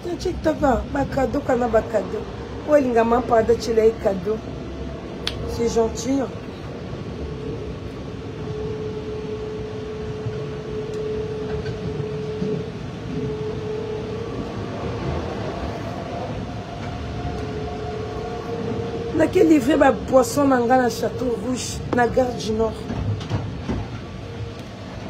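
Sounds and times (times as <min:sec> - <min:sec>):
train rumbling inside carriage: 0:00.0 - 0:25.0.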